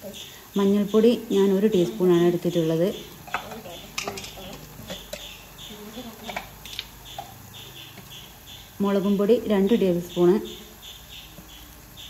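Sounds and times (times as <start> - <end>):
masala sizzling in oil: 0.0 - 12.0.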